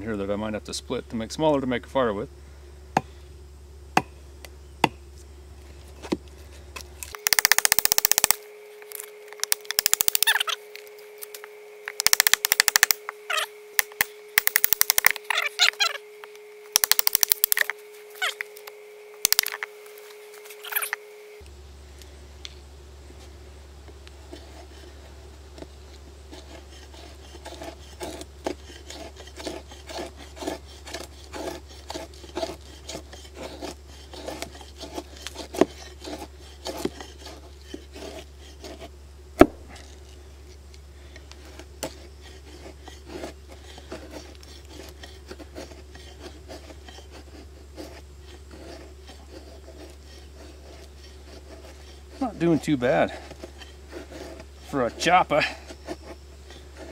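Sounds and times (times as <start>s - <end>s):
blade scraping wood shavings: 5.2s - 22.1s, 23.1s - 56.9s
knife chopping wood: 7.1s - 10.6s, 11.9s - 16.0s, 16.7s - 18.6s, 19.2s - 19.7s, 27.3s - 40.0s.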